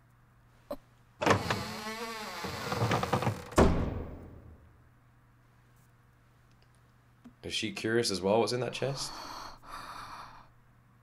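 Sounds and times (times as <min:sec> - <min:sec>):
long wavering creak: 0:01.2 - 0:03.6.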